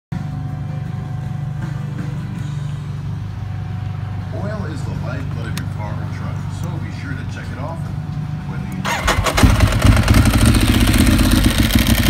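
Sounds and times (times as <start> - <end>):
motorcycle engine idling: 8.8 - 12.0.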